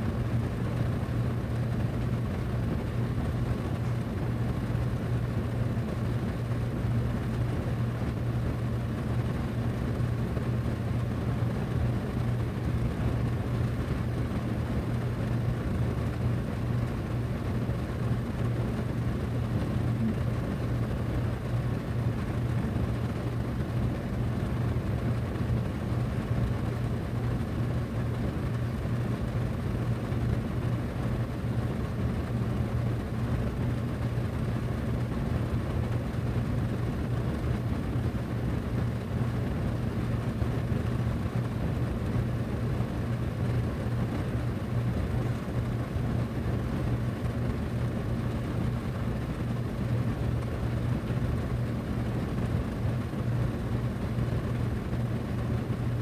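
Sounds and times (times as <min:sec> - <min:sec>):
low motor hum: 0:00.0 - 0:56.0.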